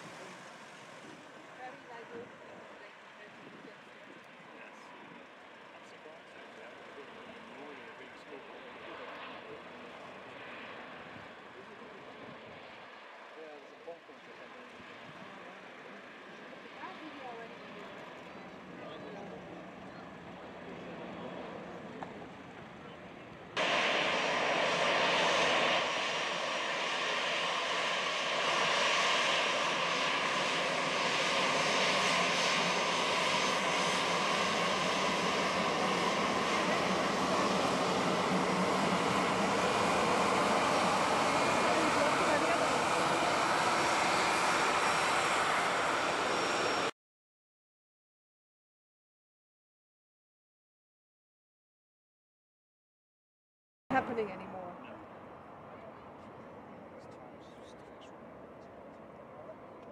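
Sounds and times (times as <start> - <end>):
jet engines whining: 0.0 - 2.9, 14.6 - 46.9.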